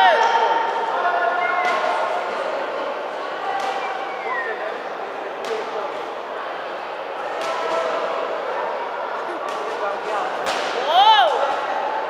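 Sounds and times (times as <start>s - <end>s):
voices shouting in a hall: 0.0s - 12.0s.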